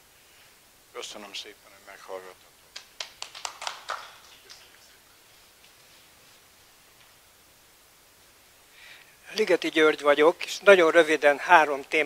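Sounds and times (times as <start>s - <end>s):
people clapping: 2.7s - 5.0s.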